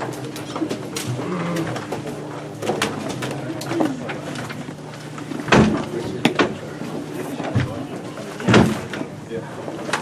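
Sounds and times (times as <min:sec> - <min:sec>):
low coo-like tones: 0:00.4 - 0:02.2.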